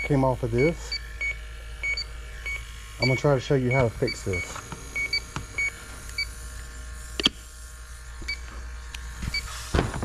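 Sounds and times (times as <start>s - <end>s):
leak detector faint high beeps: 0.0s - 6.4s, 8.2s - 8.5s, 9.2s - 9.6s.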